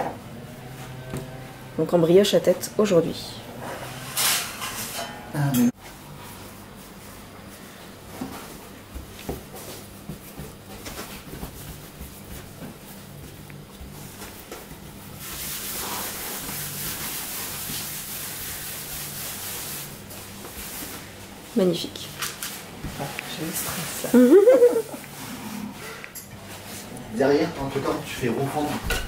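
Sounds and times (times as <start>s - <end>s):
hands rolling dough on worktop: 5.8s - 25.2s.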